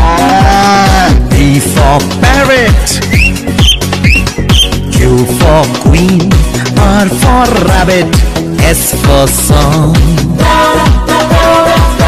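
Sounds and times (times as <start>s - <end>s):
electronic dance beat: 0.0s - 12.0s
whistled parrot calls: 3.0s - 4.8s.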